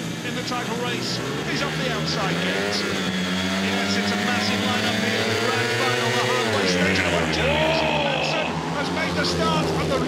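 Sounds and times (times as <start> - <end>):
motorcycle engines revving hard: 0.0 - 10.0.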